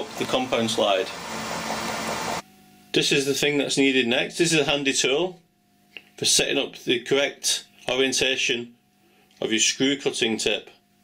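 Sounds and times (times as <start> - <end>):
lathe running: 0.0 - 2.4.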